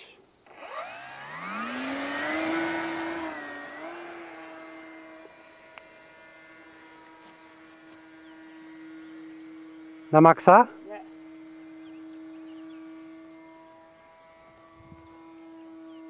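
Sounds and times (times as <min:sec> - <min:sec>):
crickets chirping: 0:00.0 - 0:16.0
model glider motor whine: 0:00.0 - 0:16.0.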